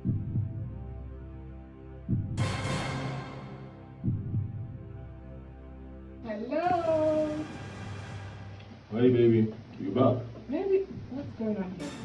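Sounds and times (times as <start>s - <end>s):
suspense music drone: 0.0s - 8.9s.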